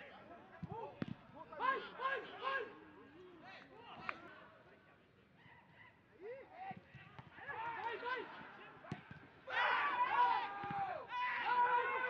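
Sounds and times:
players shouting: 1.5s - 2.8s, 7.2s - 12.0s.

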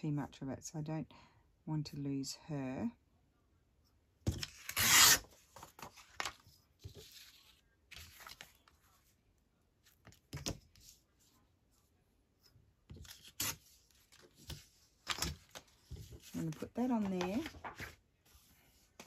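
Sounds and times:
paper rustling: 4.3s - 9.2s, 12.9s - 19.0s
paper tearing against ruler: 4.6s - 5.3s.

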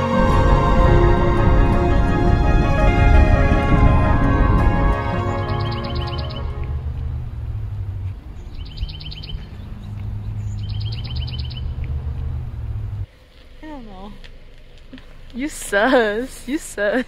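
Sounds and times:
steady low rumble: 0.0s - 16.9s
small bird trilling: 8.4s - 11.8s.

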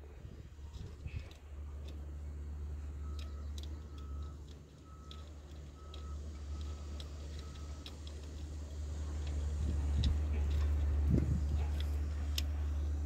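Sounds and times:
low engine drone: 0.0s - 13.0s
reversing alarm beeping: 2.8s - 8.0s
faint clicks: 3.0s - 12.6s.

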